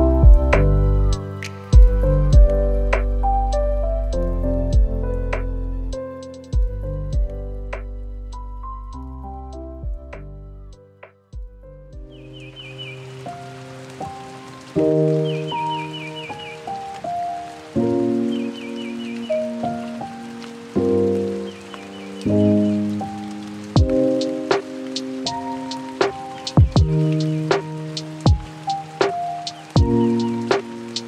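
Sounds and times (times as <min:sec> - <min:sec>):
rain sound effect: 0:00.0 - 0:10.8, 0:12.0 - 0:31.0
mellow keyboard chords: 0:00.0 - 0:31.0
drum beat with kick drum: 0:00.2 - 0:00.7, 0:01.8 - 0:02.5, 0:26.0 - 0:27.6, 0:28.3 - 0:29.2, 0:29.8 - 0:30.6.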